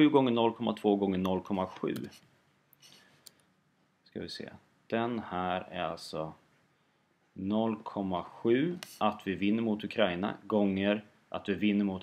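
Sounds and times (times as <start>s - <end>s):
person speaking: 0.0s - 3.1s, 4.0s - 6.5s, 7.3s - 12.0s.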